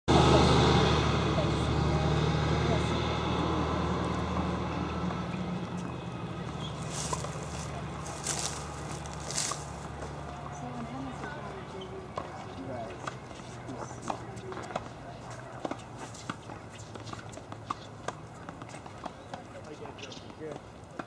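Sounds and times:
vehicle engine humming: 0:00.1 - 0:20.4.

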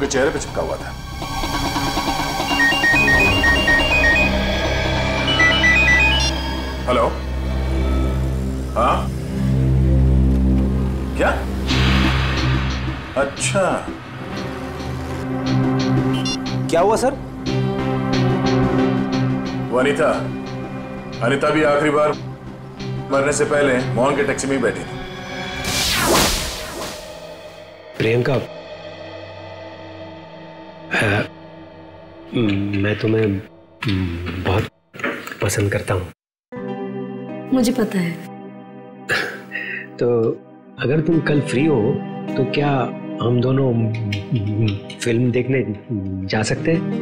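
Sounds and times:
background music drone: 0:00.0 - 0:33.4
phone ringtone beeping: 0:01.7 - 0:06.9.

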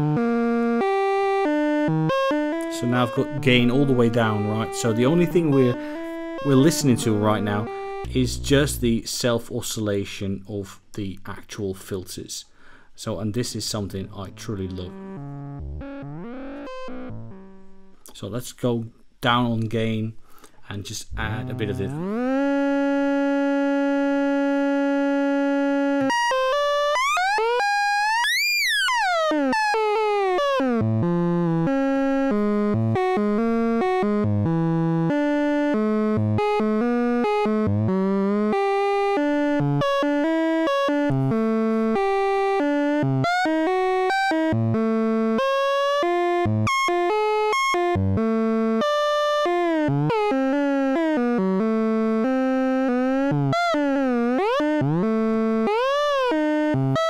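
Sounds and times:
buzzy synth tone: 0:00.0 - 0:09.0, 0:14.3 - 0:17.9, 0:21.1 - 0:46.3, 0:49.6 - 0:57.0.

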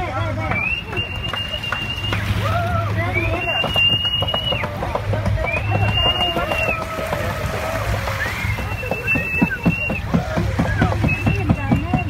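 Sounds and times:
boat engine hum: 0:00.0 - 0:12.0
people's voices: 0:00.0 - 0:12.0
water splashing against hull: 0:00.0 - 0:12.0.

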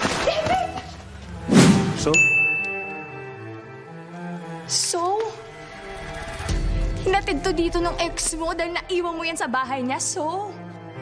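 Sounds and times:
soft background music: 0:00.3 - 0:11.0.

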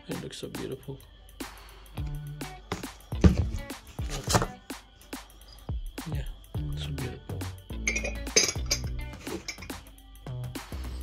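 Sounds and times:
background music: 0:00.0 - 0:11.0
ceramic mug and lid clinking: 0:07.8 - 0:09.8.

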